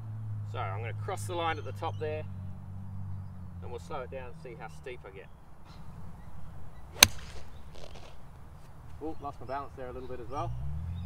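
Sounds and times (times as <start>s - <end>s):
golf club striking ball: 6.9s - 8.2s.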